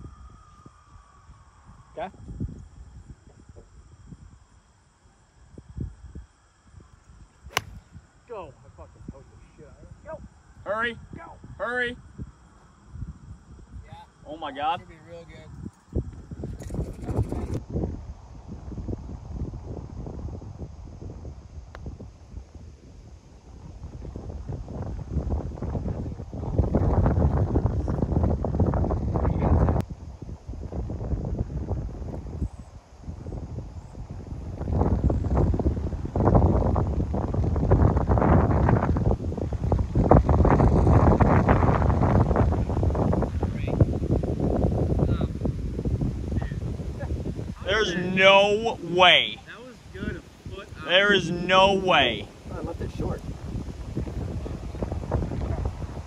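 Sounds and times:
wind gusts on microphone: 0:00.0 - 0:56.0.

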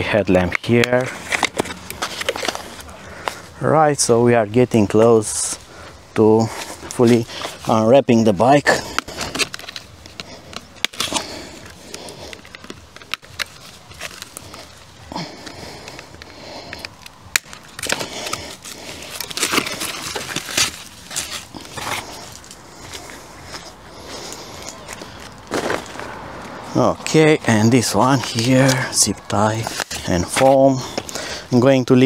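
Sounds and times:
foam and plastic wrap rustling: 0:06.4 - 0:26.1.

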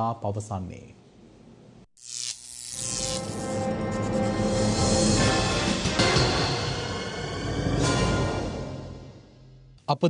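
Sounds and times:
electric buzz with steady hum: 0:02.0 - 0:03.7.

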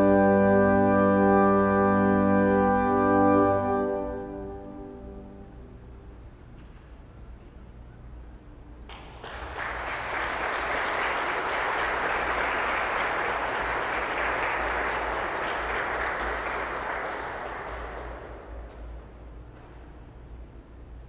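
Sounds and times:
steady low hum: 0:00.0 - 0:21.0
audience applauding: 0:08.9 - 0:19.0.

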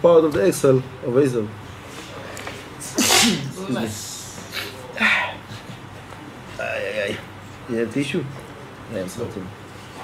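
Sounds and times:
man sneezing: 0:02.8 - 0:03.6.

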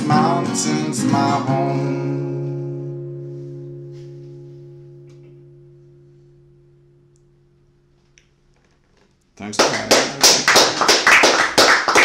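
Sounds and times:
acoustic guitar chord ringing: 0:00.0 - 0:08.5.

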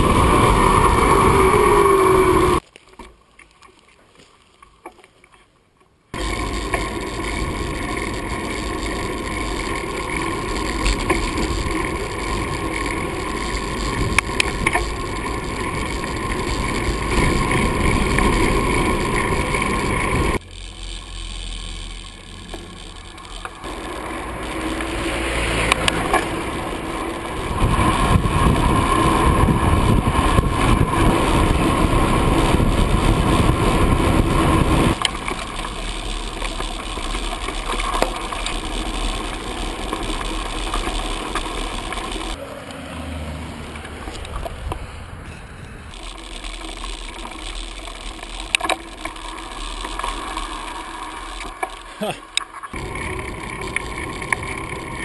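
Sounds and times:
wind rush: 0:00.0 - 0:02.6, 0:23.6 - 0:35.7
bicycle road noise: 0:00.0 - 0:55.0
bicycle rattles and clicks: 0:06.2 - 0:42.4, 0:43.7 - 0:45.0, 0:45.8 - 0:55.0.

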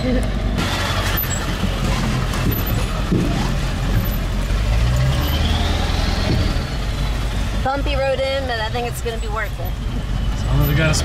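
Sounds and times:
engine and tyre rumble: 0:00.0 - 0:11.0
knocks and rattles: 0:00.6 - 0:05.2.

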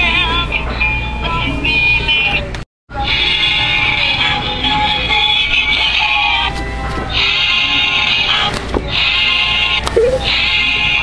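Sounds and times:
tinny greeting card song: 0:00.0 - 0:11.0.

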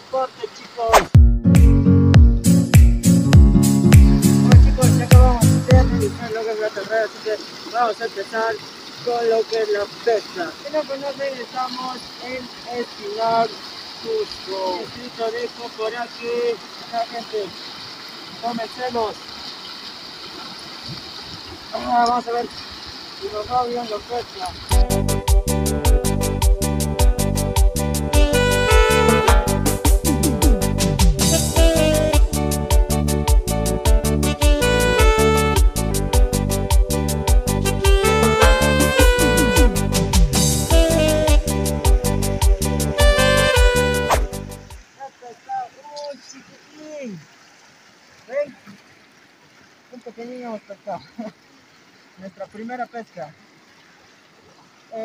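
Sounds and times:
river rushing: 0:04.0 - 0:24.8
man exclaiming: 0:04.6 - 0:06.6.

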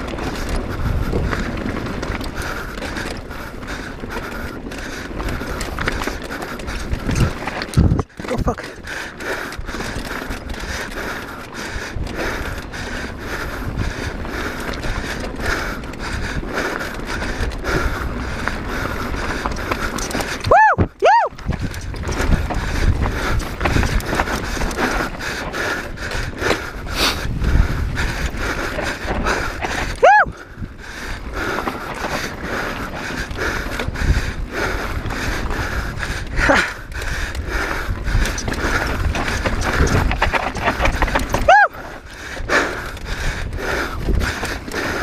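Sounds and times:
bike rattling over rocks: 0:00.0 - 0:45.0
wind noise on microphone: 0:00.0 - 0:45.0.

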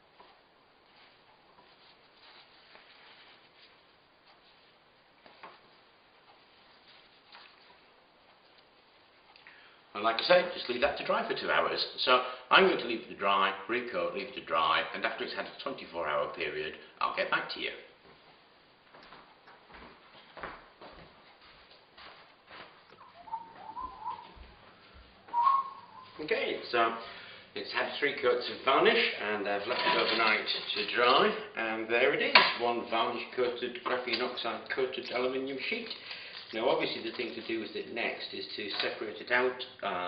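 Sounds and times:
person whistling: 0:23.0 - 0:24.5, 0:25.3 - 0:26.2.

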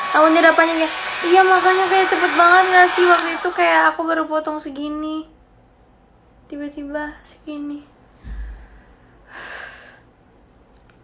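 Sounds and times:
dull low thump: 0:08.2 - 0:09.0
person exhaling: 0:08.2 - 0:10.0.

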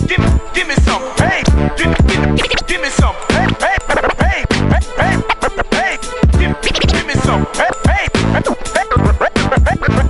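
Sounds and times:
hip-hop beat with kick drum: 0:00.0 - 0:10.0
turntable scratching: 0:00.0 - 0:10.0.

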